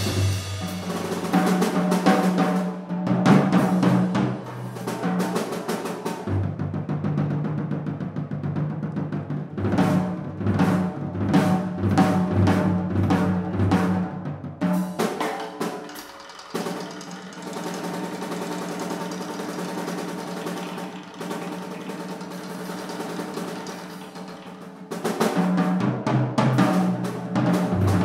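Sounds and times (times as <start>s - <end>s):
loud tom strokes: 0.0s - 6.6s, 14.6s - 28.0s
dense drum roll: 0.0s - 28.0s.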